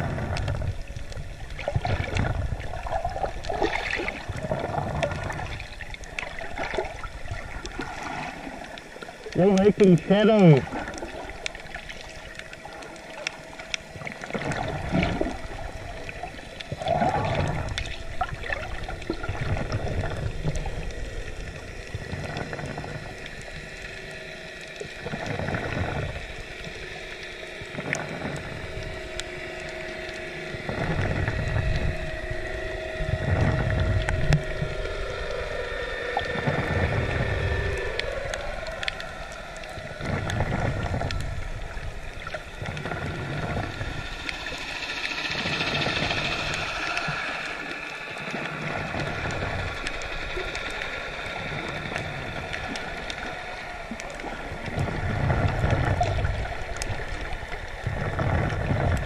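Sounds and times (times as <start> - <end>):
muffled underwater rushing water: 0.0 - 59.0
humming tones sliding in pitch: 10.4 - 58.6.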